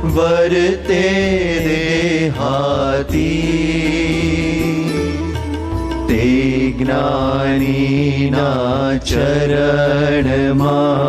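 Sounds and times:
two men singing a chant: 0.0s - 5.3s, 6.1s - 11.0s.

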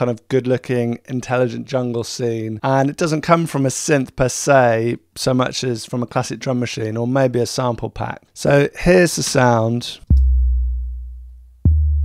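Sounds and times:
deep kick drum bass hits: 10.1s - 12.0s.

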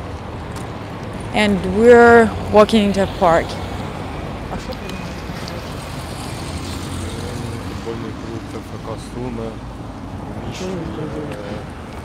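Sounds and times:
cars passing on a road: 0.0s - 12.0s.

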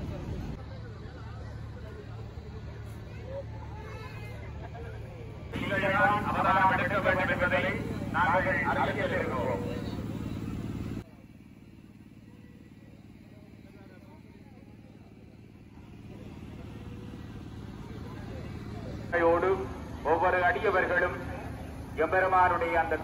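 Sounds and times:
low motor hum: 0.0s - 23.0s
voices: 0.0s - 23.0s.

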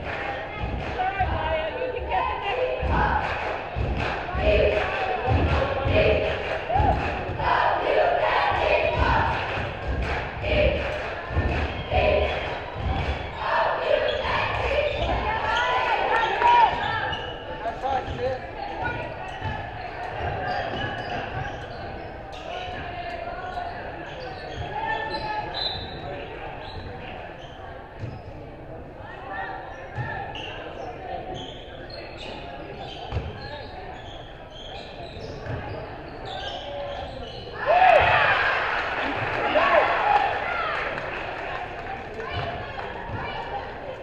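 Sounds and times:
echoing voices: 0.0s - 25.5s.

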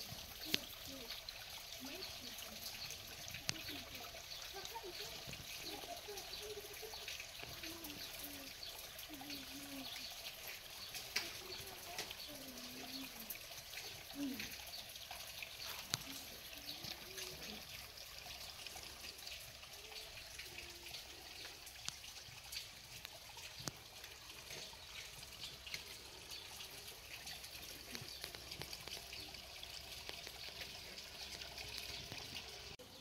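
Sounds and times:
trickle of running water: 0.0s - 33.0s.

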